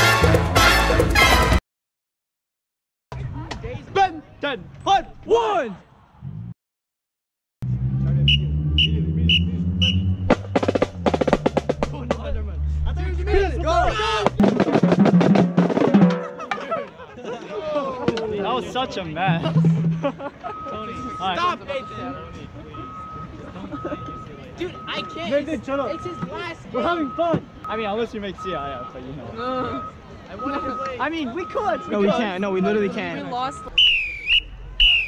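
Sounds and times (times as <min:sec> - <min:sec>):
rapid snare drum strokes: 0:10.3 - 0:12.3, 0:14.3 - 0:16.6
low sustained bass: 0:19.3 - 0:20.2
reversing alarm beeps: 0:20.4 - 0:25.2, 0:25.8 - 0:27.4, 0:28.4 - 0:29.0, 0:29.7 - 0:32.3, 0:33.4 - 0:35.0.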